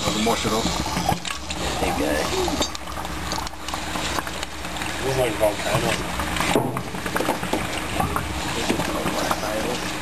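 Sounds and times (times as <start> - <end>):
quicklime crackling in water: 0.0 - 10.0.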